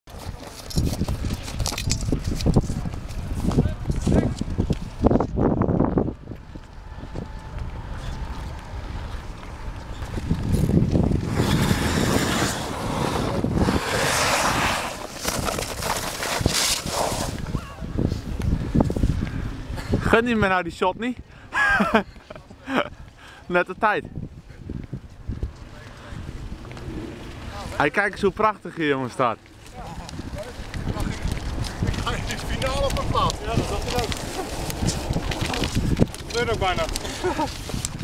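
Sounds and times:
wind rumbling on microphone: 0.1 - 38.0
ice skates scraping on ice: 7.9 - 18.3, 29.7 - 38.0.

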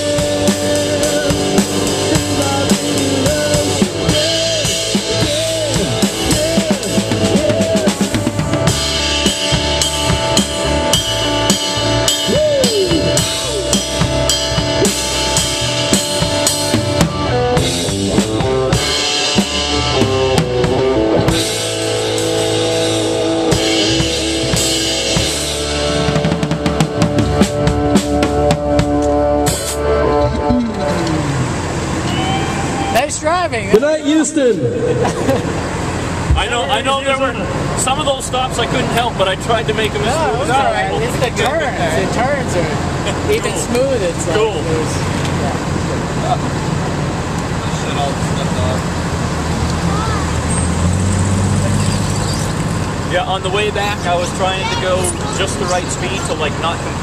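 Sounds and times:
electric guitar bending notes: 0.0 - 47.6
drum kit playing: 0.0 - 57.0.

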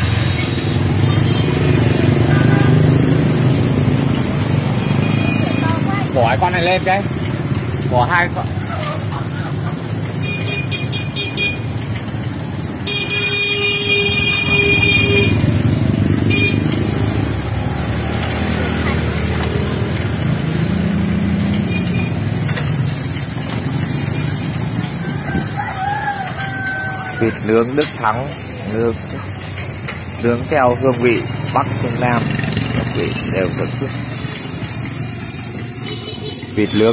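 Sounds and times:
street traffic rumble: 0.0 - 36.9
vehicle horns honking: 0.7 - 3.3, 4.8 - 5.9, 10.2 - 11.8, 12.8 - 17.0, 35.6 - 36.9.

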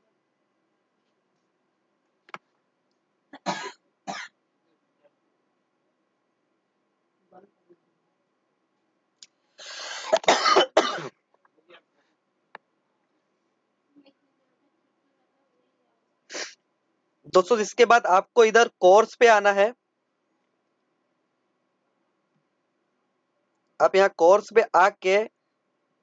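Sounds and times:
person coughing: 3.4 - 4.3, 9.6 - 11.1
sharp burst of breath: 9.5 - 10.2, 16.3 - 16.6.

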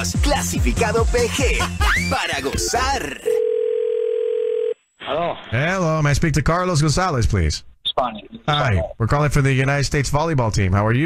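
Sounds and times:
telephone ringback tone: 3.3 - 4.8.

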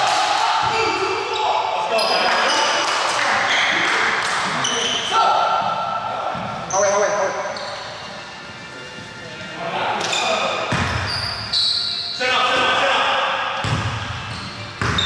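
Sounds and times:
basketball bouncing on gym floor: 10.7 - 11.1, 13.6 - 15.0.

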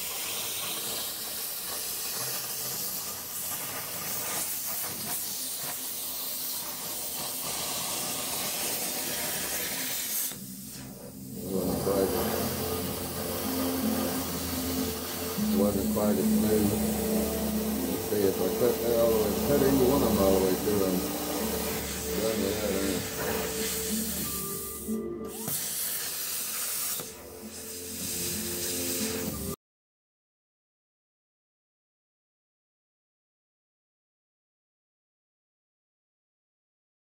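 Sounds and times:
steady hiss: 0.0 - 29.6
flute music: 10.4 - 26.1.

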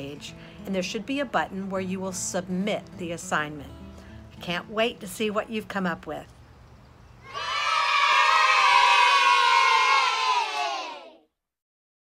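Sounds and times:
children cheering: 7.2 - 11.2.

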